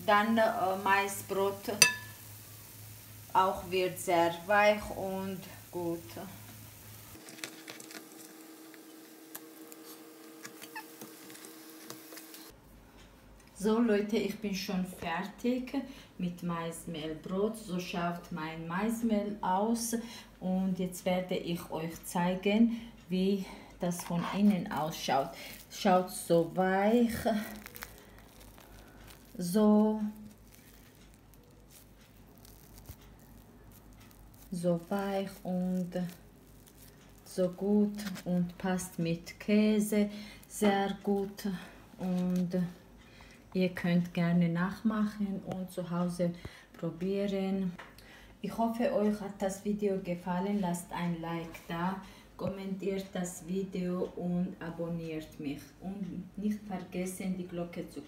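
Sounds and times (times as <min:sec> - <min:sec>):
faint sizzle of frying: 0:00.0 - 0:12.6, 0:22.0 - 0:45.2
tongs clicking on pan: 0:01.5 - 0:02.8
flatbread tearing and rustling: 0:06.5 - 0:12.5, 0:26.9 - 0:39.0.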